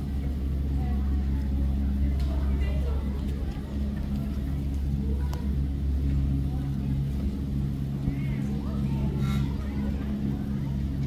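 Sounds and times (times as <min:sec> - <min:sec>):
lift machinery droning: 0:00.0 - 0:11.0.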